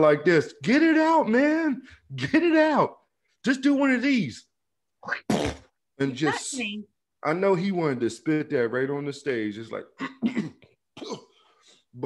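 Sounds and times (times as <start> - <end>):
man hacking cough: 10.0 - 11.4.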